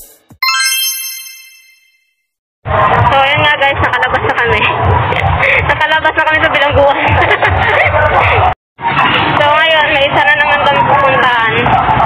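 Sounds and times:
bright bell-like chime: 0:00.4 - 0:02.0
street noise: 0:02.7 - 0:12.0
voices: 0:09.4 - 0:11.8.

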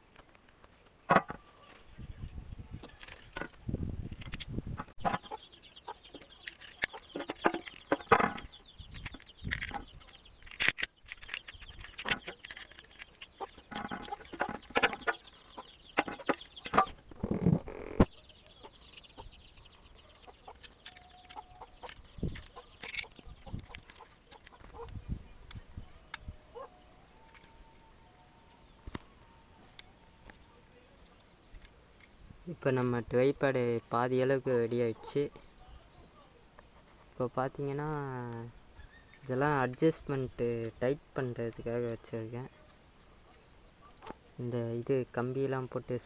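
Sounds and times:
chicken clucking: 0:05.0 - 0:10.2, 0:13.0 - 0:17.0.

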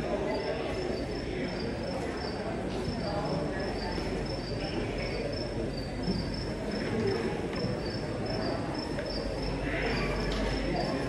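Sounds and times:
murmur of hall noise: 0:00.0 - 0:11.0.

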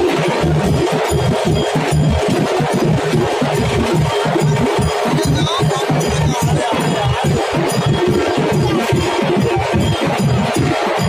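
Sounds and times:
fast percussion beat: 0:00.0 - 0:11.0.

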